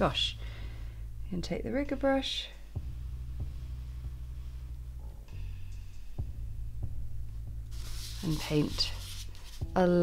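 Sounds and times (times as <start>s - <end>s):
low throbbing hum: 0.0s - 8.4s.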